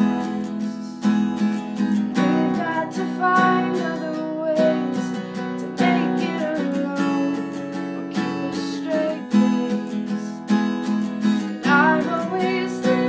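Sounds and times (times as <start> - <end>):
woman singing: 0.0 - 1.2, 2.2 - 10.5, 11.6 - 13.0
acoustic guitar strumming: 0.0 - 13.0.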